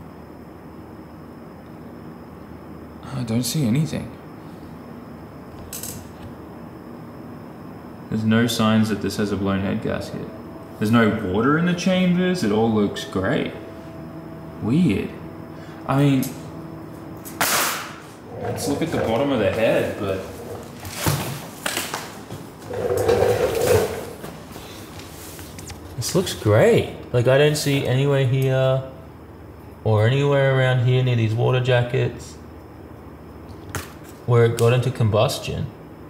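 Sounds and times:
scraping and rustling on cardboard: 22.6 - 24.2.

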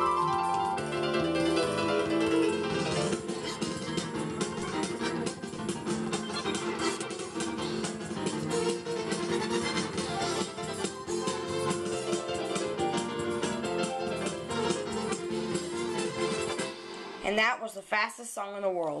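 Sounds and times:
fast electronic keyboard music: 0.0 - 16.9.

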